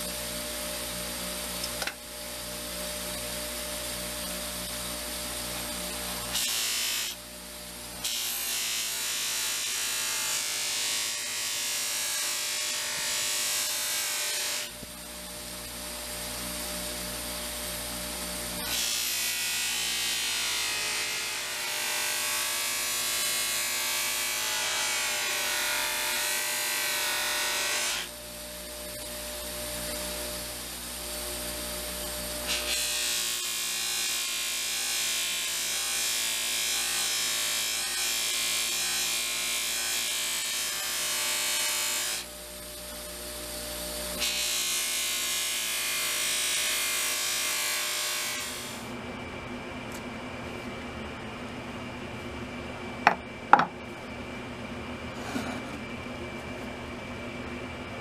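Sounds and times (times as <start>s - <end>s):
bench grinder rasping: 55.1s - 55.9s.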